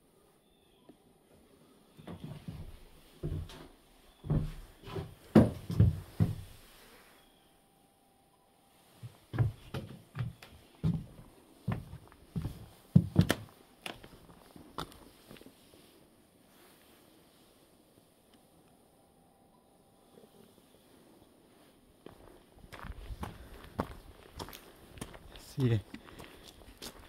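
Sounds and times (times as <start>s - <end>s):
footsteps on wooden floorboards: 2.0s - 6.6s, 9.0s - 14.2s.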